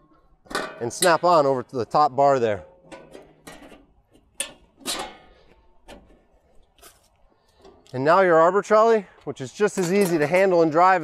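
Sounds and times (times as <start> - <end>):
steel panels clanking: 0.4 - 1.6, 2.5 - 6.3, 9.6 - 11.0.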